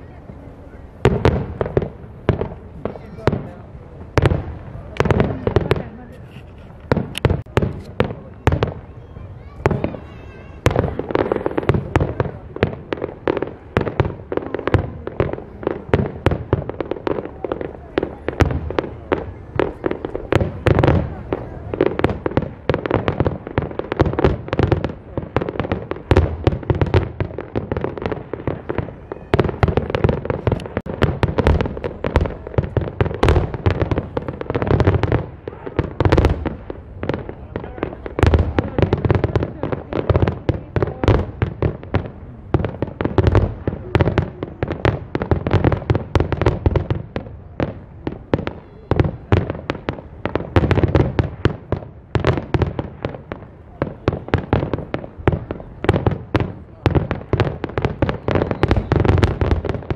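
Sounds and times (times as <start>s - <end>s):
fireworks bursting: 0.0s - 59.9s.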